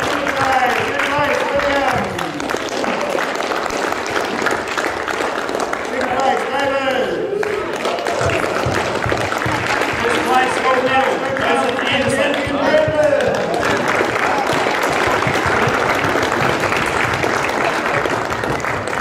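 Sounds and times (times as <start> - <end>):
audience clapping: 0.0 - 19.0.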